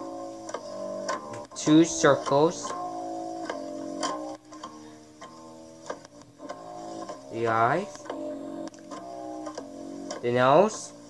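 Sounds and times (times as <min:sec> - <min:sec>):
soft held chords: 0:00.0 - 0:11.0.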